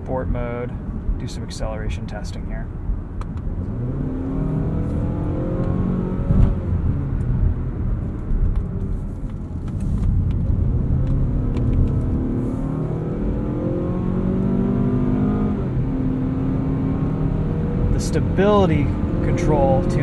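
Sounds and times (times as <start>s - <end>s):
car engine accelerating: 3.2s - 20.0s.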